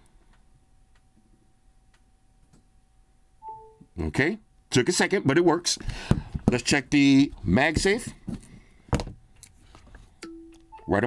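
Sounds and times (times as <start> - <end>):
phone charging chime: 10.2 - 11.0.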